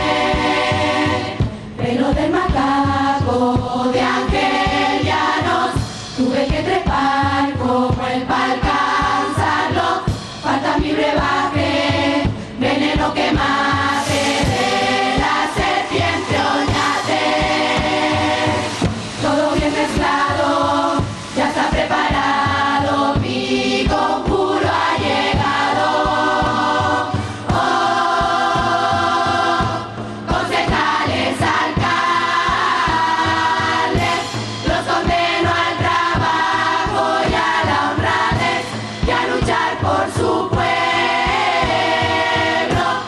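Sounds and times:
choir singing together: 0.0s - 43.0s
percussion steady beat: 0.0s - 43.0s.

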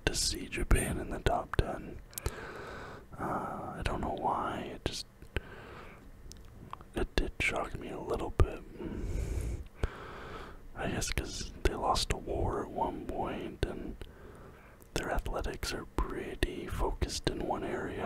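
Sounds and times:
person whispering: 0.0s - 2.0s, 3.2s - 5.0s, 6.9s - 9.6s, 10.8s - 14.0s, 15.0s - 18.0s.

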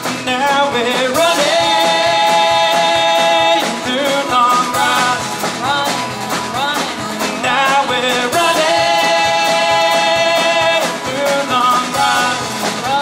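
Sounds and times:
folk-rock band playing: 0.0s - 13.0s
person singing: 0.0s - 13.0s.

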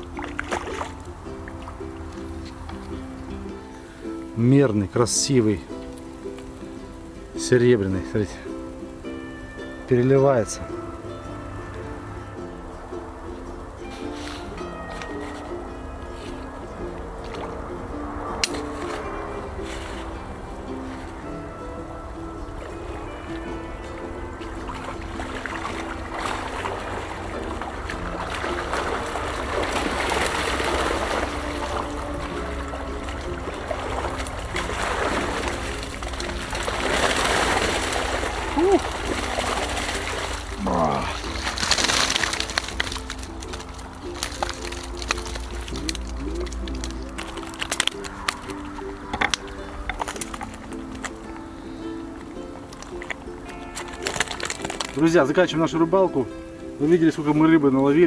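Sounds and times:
water splashing through mesh net: 0.0s - 56.1s
background music: 0.0s - 58.0s.

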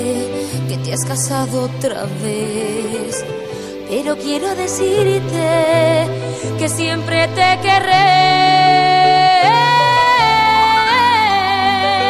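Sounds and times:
woman singing long note: 6.7s - 12.0s.

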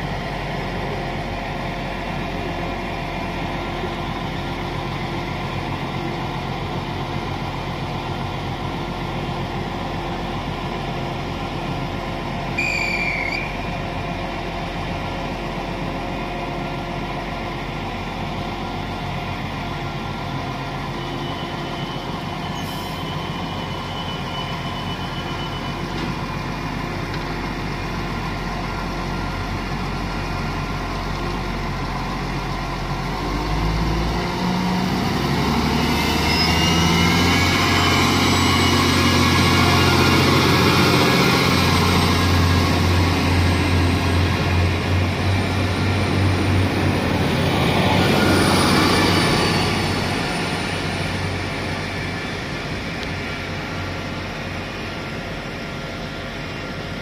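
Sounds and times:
diesel train engine hum: 0.0s - 57.0s
whine climbing in pitch: 35.0s - 53.4s.

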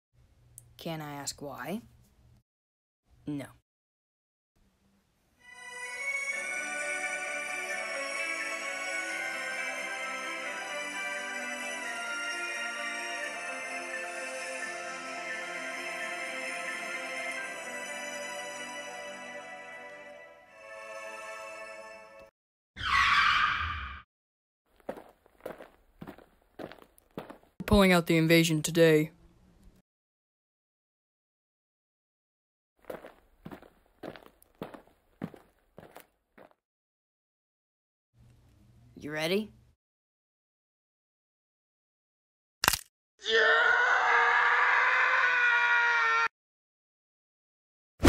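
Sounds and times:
footsteps: 24.7s - 27.6s, 32.8s - 36.6s.

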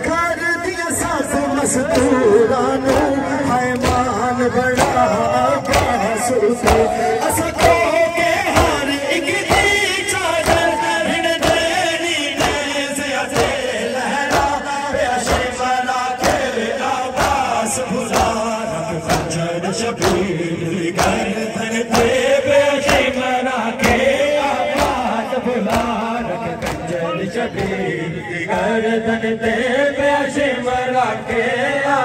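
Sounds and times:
rhythmic chest-beating: 0.0s - 32.0s
voices chanting in unison: 0.0s - 32.0s.

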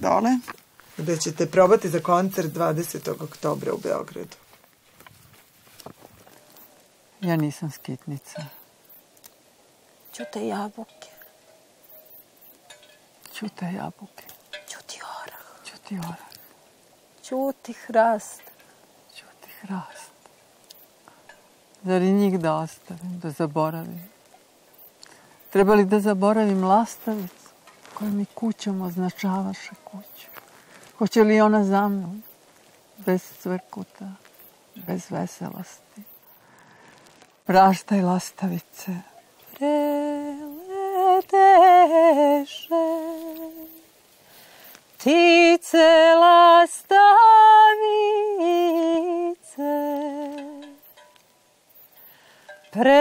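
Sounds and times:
woman whispering: 13.3s - 16.4s, 19.1s - 20.2s
woman singing: 37.5s - 43.9s, 45.0s - 50.8s, 52.7s - 53.0s.

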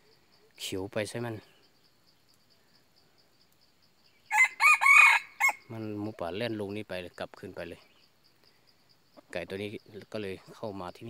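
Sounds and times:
faint insect ticking: 0.0s - 11.0s
rooster crowing: 4.3s - 5.7s.

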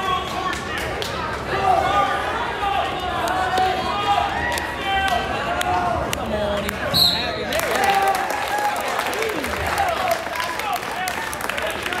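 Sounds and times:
spectators cheering and clapping: 0.0s - 6.2s, 7.3s - 12.0s
referee's whistle: 7.0s - 7.4s.

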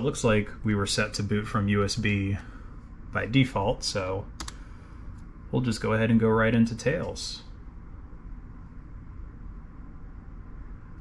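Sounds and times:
low machine hum: 0.0s - 11.0s.

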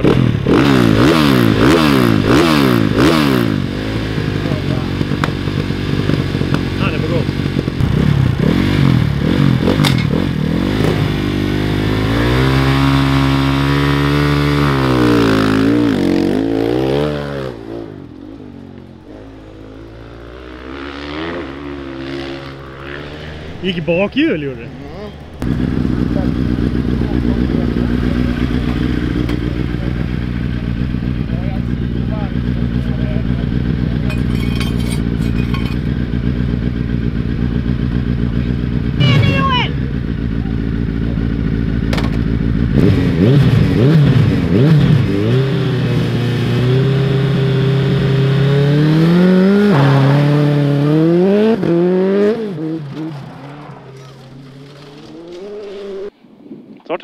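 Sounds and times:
motorcycle engine revving and accelerating: 0.0s - 56.1s.

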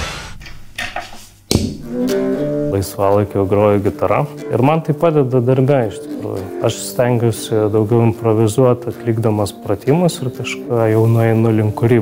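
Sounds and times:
hiss: 0.0s - 0.5s.

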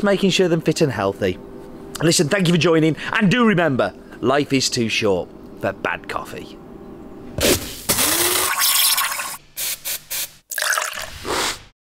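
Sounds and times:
liquid splashing and pouring: 8.3s - 9.4s, 10.5s - 11.2s.

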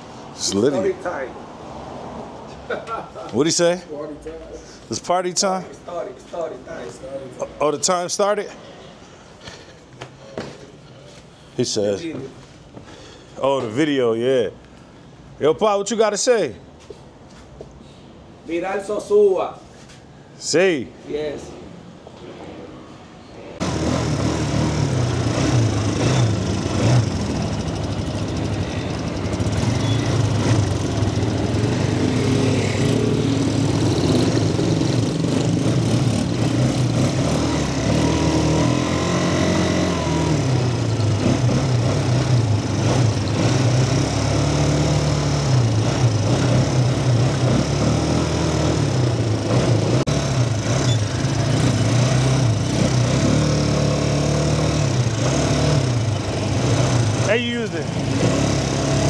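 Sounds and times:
quad bike engines revving: 23.6s - 59.0s.

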